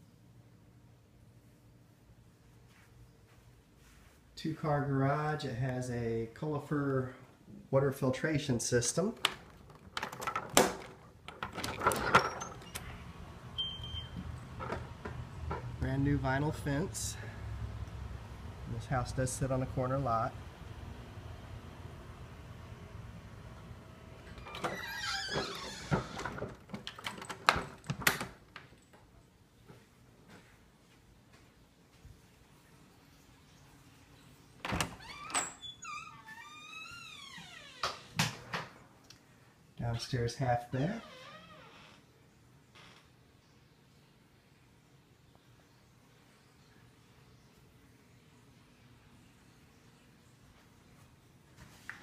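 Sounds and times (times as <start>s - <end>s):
door hinges creaking: 9.1s - 15.8s, 24.2s - 28.5s, 34.6s - 38.7s, 40.9s - 42.0s.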